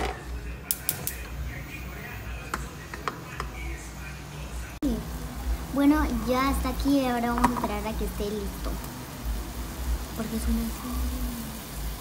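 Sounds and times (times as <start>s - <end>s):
gas hob igniter clicks: 0.0s - 1.3s.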